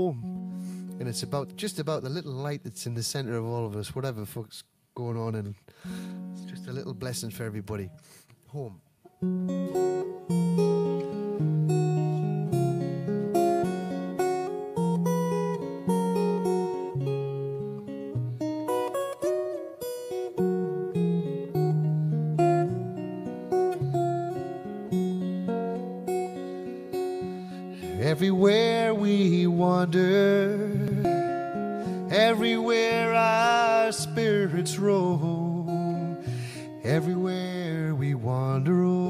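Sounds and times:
solo acoustic guitar: 0.0 - 2.6, 5.7 - 39.0.

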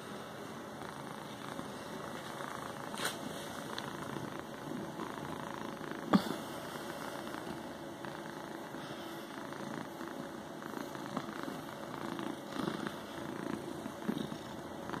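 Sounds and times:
cat purring: 0.0 - 15.0.

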